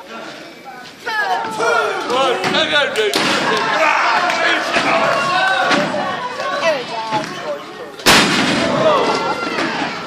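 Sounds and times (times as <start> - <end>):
voices shouting: 1.0 - 7.5.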